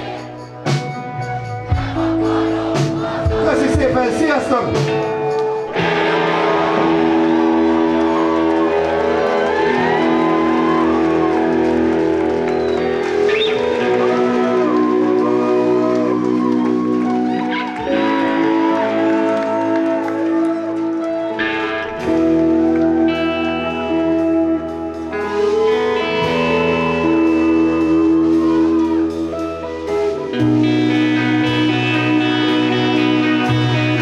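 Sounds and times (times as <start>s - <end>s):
drums: 0.0s - 34.0s
electric guitars: 0.0s - 34.0s.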